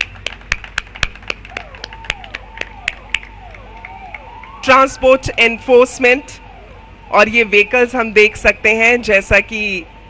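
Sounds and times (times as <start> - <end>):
hand clapping: 0.0 - 4.6
faint vehicle siren: 1.3 - 10.0.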